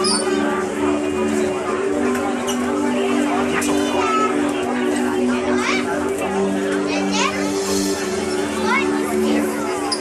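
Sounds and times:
background music with held notes: 0:00.0 - 0:10.0
shoppers' voices: 0:00.0 - 0:10.0
children's voices: 0:02.6 - 0:10.0.

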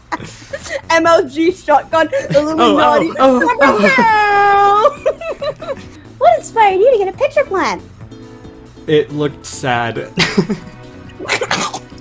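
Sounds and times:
people laughing: 0:00.0 - 0:00.9, 0:02.0 - 0:06.0, 0:10.2 - 0:11.5
background music: 0:00.0 - 0:12.0.

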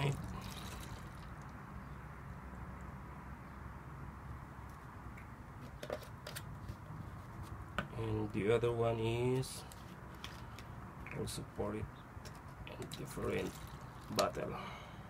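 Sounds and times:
water pouring into plastic cup: 0:00.0 - 0:01.6, 0:12.9 - 0:14.4.

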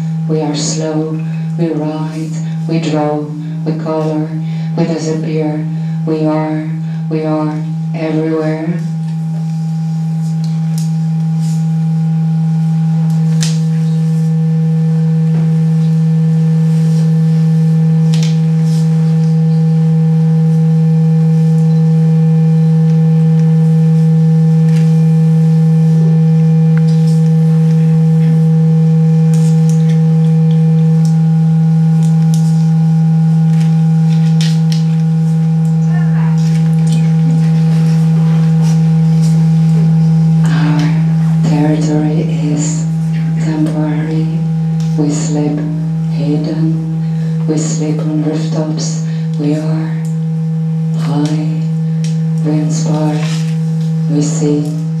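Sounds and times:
higher held electronic tones: 0:00.0 - 0:55.0
low electronic hum: 0:00.0 - 0:55.0.

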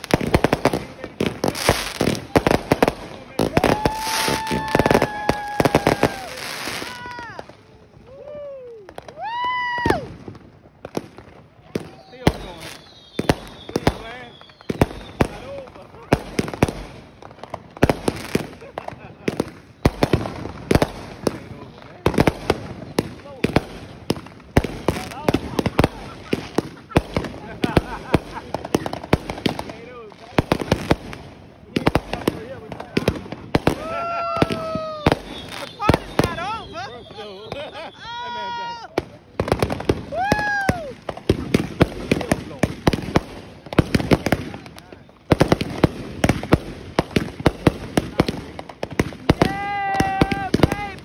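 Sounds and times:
fireworks bangs and crackles: 0:00.0 - 0:51.0.

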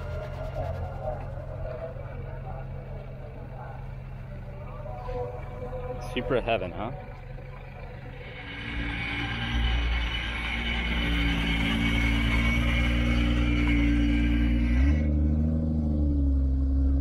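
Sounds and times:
car engine running slowly: 0:00.0 - 0:17.0.

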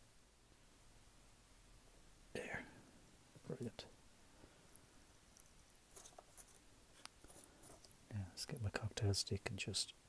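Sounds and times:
person saying yeah softly: 0:02.4 - 0:02.8
person whispering: 0:02.4 - 0:03.9.

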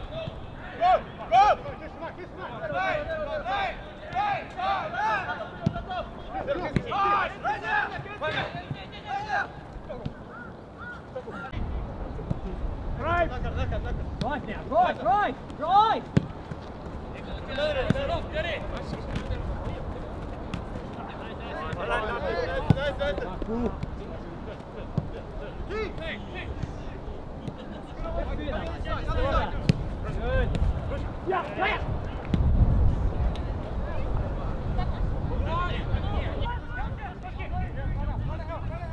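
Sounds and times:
footballers shouting: 0:00.0 - 0:11.6, 0:13.0 - 0:32.5
wind rumble on microphone: 0:28.2 - 0:38.9.

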